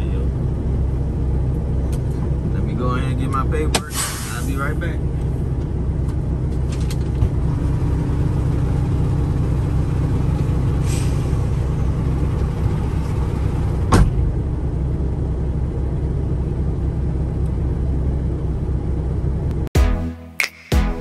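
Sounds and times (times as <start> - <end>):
truck diesel engine idling: 0.0 - 19.5
short hiss: 3.9 - 4.5.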